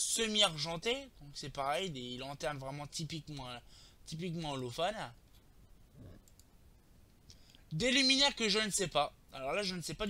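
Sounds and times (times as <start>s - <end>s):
faint computer mouse clicks: 6.2s - 6.5s.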